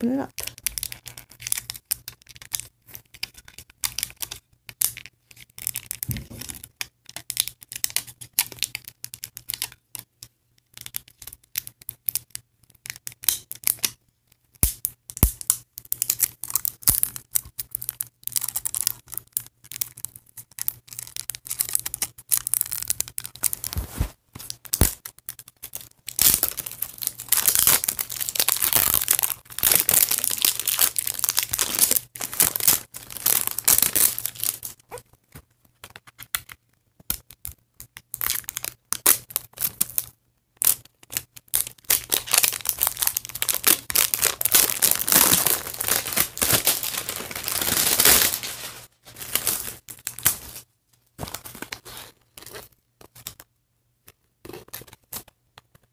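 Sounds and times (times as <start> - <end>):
packaging tearing and crinkling: 20.6 - 34.8, 38.1 - 50.6.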